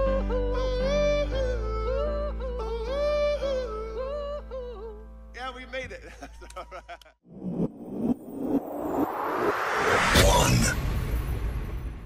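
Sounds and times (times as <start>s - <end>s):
person singing: 0.0s - 5.0s.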